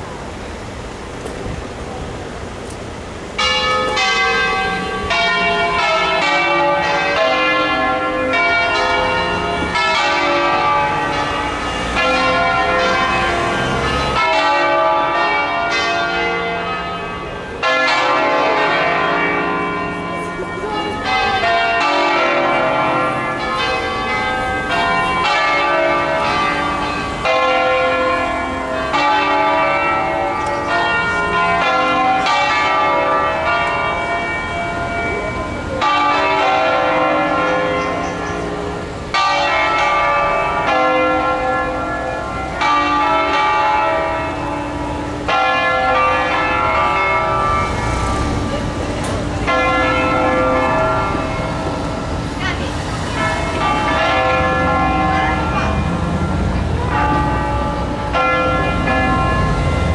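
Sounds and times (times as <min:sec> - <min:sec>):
church bells pealing: 0:02.2 - 0:59.9.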